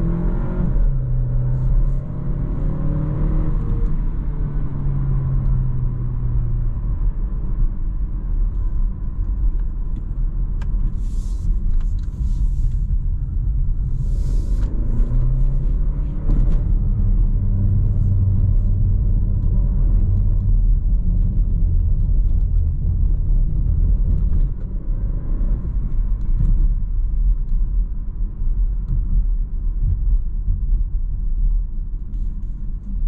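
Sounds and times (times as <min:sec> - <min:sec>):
car engine drone: 0:00.0 - 0:33.0
tyre and road rumble: 0:00.0 - 0:33.0.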